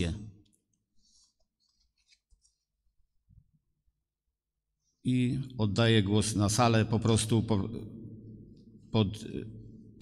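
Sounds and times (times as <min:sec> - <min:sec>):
man's voice echoing in hall: 0:00.0 - 0:00.6, 0:05.0 - 0:10.0.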